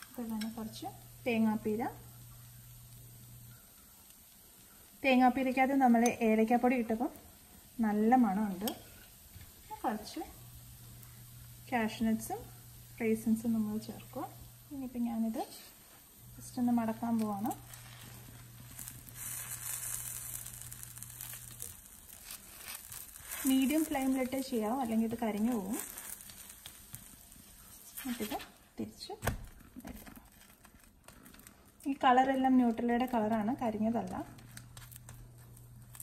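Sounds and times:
steady low hum: 0.0 - 28.8
food sizzling on a pan: 0.0 - 36.0
spatula scraping nonstick pan: 16.6 - 28.6.

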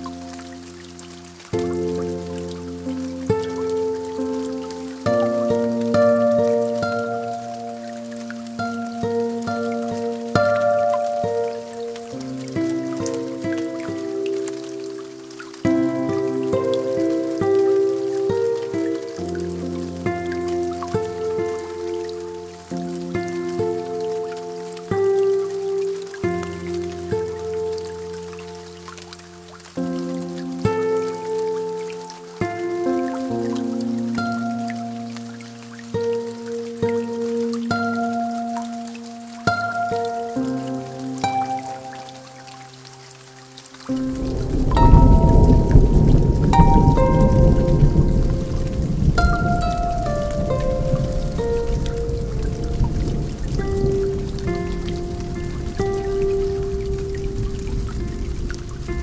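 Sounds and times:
rain: 0.0 - 59.0
slow lofi keyboard music: 0.0 - 59.0
water drips: 0.0 - 59.0
low thunder rumble: 44.1 - 59.0.

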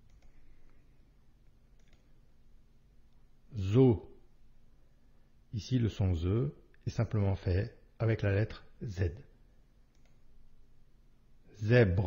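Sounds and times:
faint low hum: 0.0 - 12.0
man narrating: 3.5 - 4.2, 5.6 - 9.3, 11.5 - 12.0.

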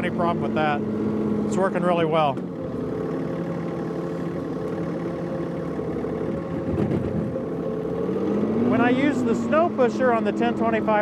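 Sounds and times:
loader bucket pushing snow: 0.0 - 11.0
tractor diesel engine running: 0.0 - 11.0.

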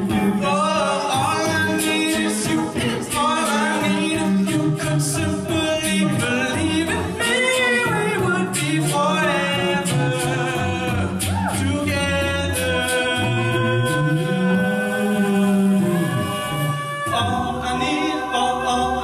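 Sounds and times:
male voices singing harmony: 0.1 - 19.0.

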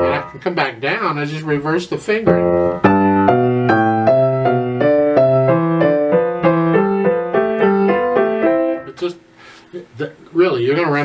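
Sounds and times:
grand piano playing: 0.0 - 0.8, 2.2 - 9.1.

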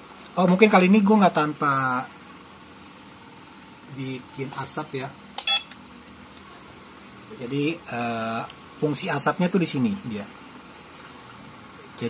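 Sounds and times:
short electronic beep: 5.5 - 5.7.

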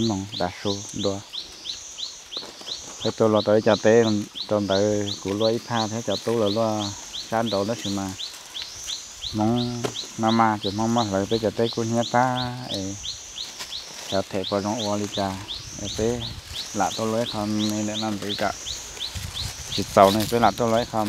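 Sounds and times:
people talking: 0.0 - 1.3, 3.0 - 8.2, 9.3 - 13.0, 14.1 - 18.6, 19.8 - 21.0.

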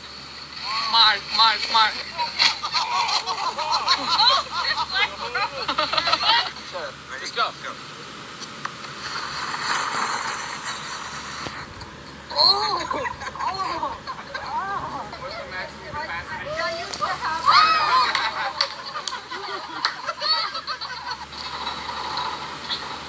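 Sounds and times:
steady rushing hiss: 0.0 - 23.0
people shouting excitedly: 17.3 - 18.4.

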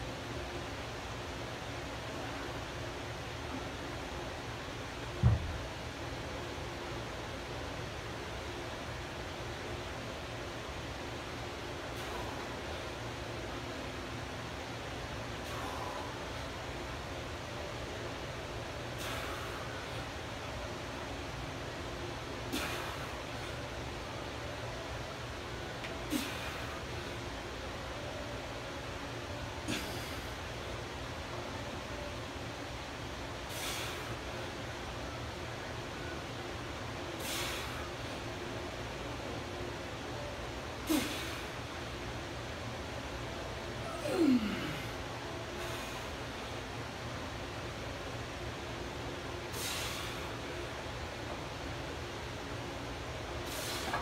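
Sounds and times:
low room noise: 0.0 - 54.0
short grunt: 43.8 - 44.9.

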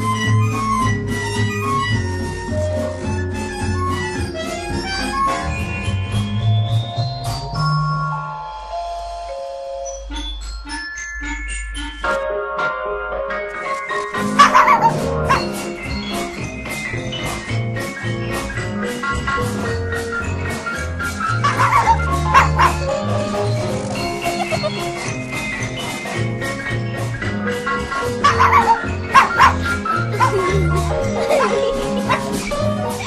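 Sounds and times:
light music: 0.0 - 33.0
puppy yapping: 14.4 - 15.5, 21.4 - 23.0, 28.2 - 33.0.

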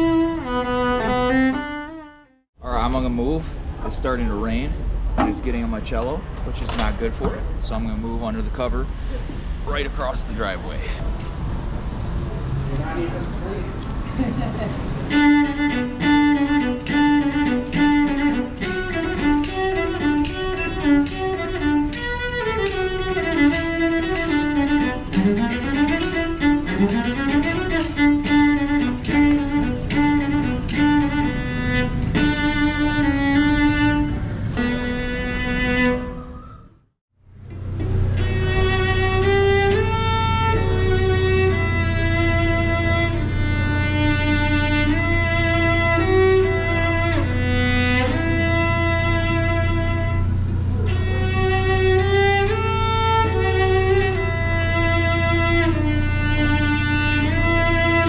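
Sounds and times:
cello melody: 0.0 - 2.5, 14.8 - 36.2, 37.5 - 58.0
jingle keeping the beat: 11.1 - 11.6, 15.1 - 32.4, 34.6 - 35.0.

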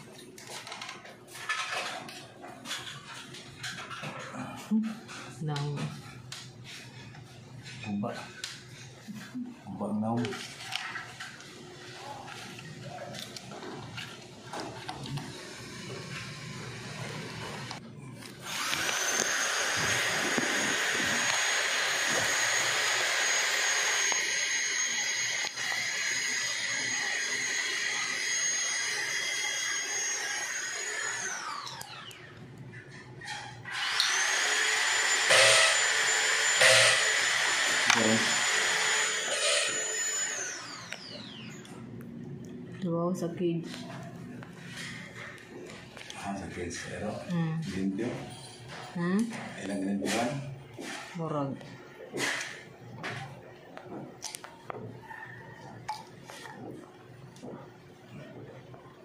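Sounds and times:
power tool motor whining: 18.4 - 32.4, 33.6 - 41.8.

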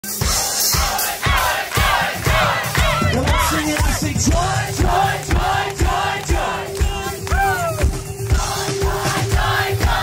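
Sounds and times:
live band music: 0.0 - 10.0
crowd cheering and shouting: 0.1 - 10.0
kick drum steady beat: 0.2 - 10.0.

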